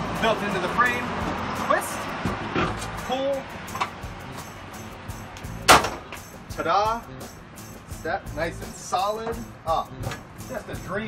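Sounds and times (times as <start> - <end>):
loud metal clank: 5.6 - 6.2.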